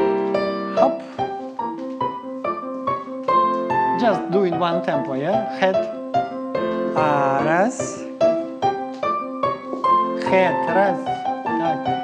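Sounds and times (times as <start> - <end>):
piano music: 0.0 - 12.0.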